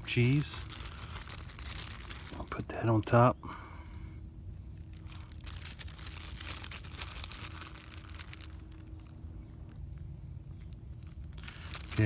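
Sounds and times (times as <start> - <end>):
plastic bag crinkling: 0.0 - 3.1, 4.8 - 9.8, 10.5 - 12.0.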